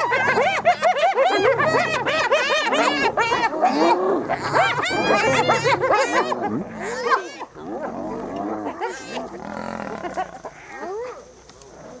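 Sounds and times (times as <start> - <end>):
hyenas calling: 0.0 - 11.2
lion growling: 0.0 - 11.2.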